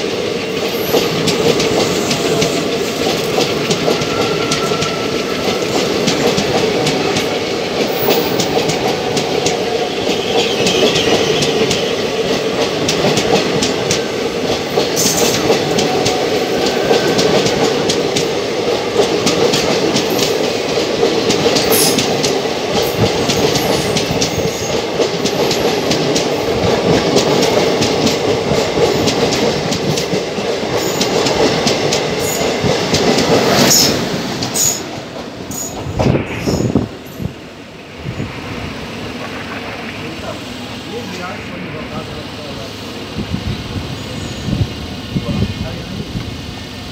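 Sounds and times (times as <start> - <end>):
clickety-clack over rail joints: 0.0 - 36.3
train wheels rushing on rails: 0.0 - 46.9.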